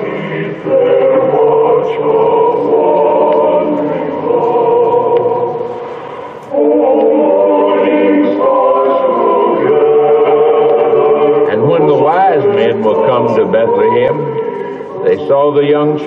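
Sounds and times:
choir singing sustained chords: 0.0s - 16.0s.

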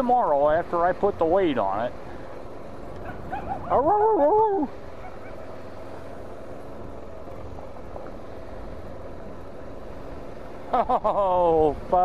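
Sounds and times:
motorcycle engine running: 0.0s - 12.0s
dog barking and yelping: 3.0s - 4.2s, 5.0s - 5.5s.

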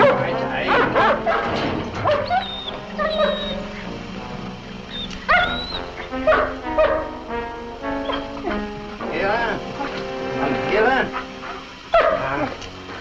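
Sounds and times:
background music: 0.0s - 13.0s
animal yelping and whimpering: 0.7s - 3.9s, 4.9s - 7.0s, 8.0s - 8.6s.

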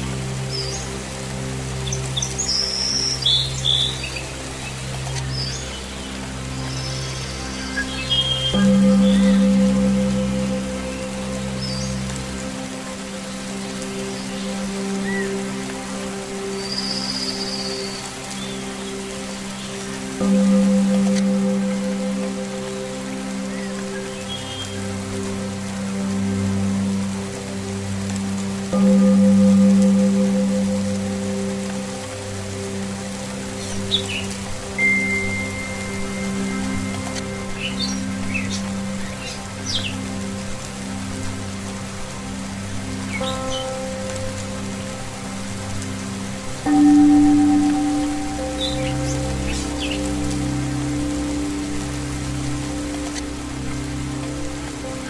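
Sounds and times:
slow meditation music: 0.0s - 55.0s
steady rain falling: 0.0s - 55.0s.

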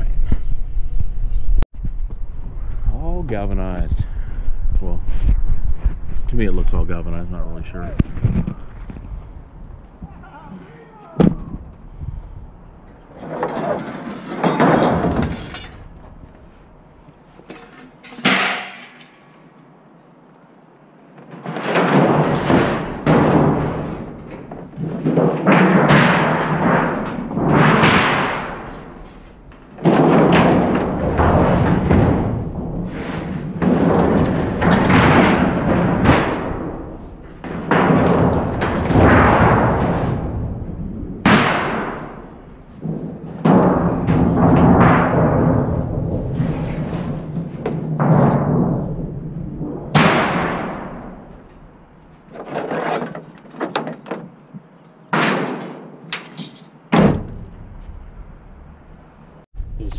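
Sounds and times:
sheet metal clanging and scraping: 13.1s - 16.6s, 17.3s - 19.4s, 21.2s - 54.4s.

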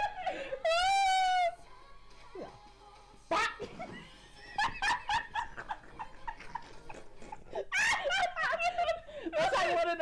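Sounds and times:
women laughing: 3.3s - 10.0s.

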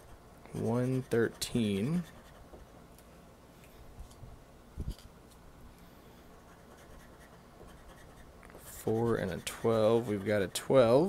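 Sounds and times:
scraper scratching lottery ticket: 0.0s - 2.4s, 6.5s - 10.8s.

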